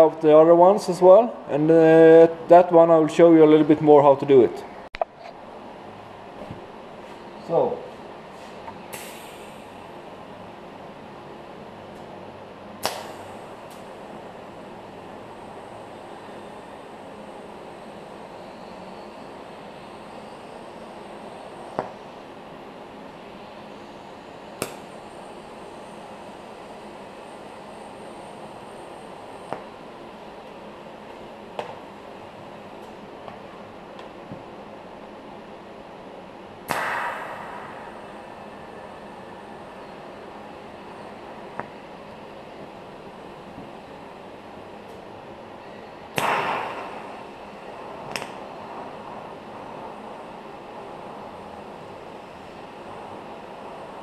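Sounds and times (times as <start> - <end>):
welding arc hissing and humming: 8.9 - 9.9.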